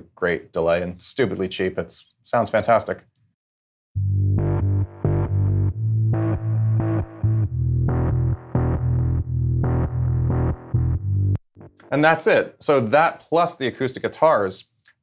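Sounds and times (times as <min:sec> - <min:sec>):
chopped reversed piano chords: 0:04.0 - 0:11.8
low held notes: 0:04.0 - 0:11.9.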